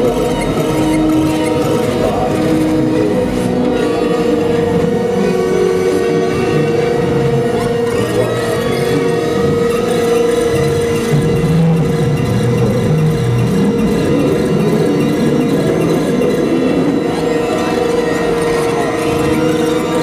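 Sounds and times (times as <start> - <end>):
loud electronic drone: 0.0 - 20.0
shifting low electronic tones: 0.0 - 20.0.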